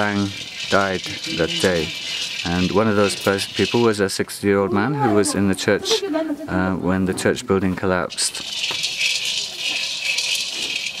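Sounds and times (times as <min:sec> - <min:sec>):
steady high hiss: 0:00.0 - 0:04.6
kernels rattling in a wok: 0:00.0 - 0:04.9, 0:07.8 - 0:11.0.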